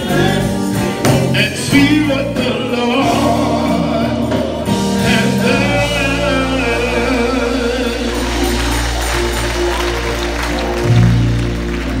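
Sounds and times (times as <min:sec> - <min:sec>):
keyboard and bass chords: 0:00.0 - 0:12.0
shaking percussion: 0:03.0 - 0:12.0.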